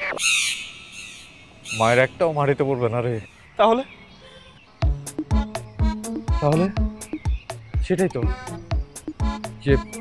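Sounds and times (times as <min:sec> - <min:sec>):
man speaking: 0:06.3 - 0:06.9, 0:07.8 - 0:08.6, 0:09.5 - 0:10.0.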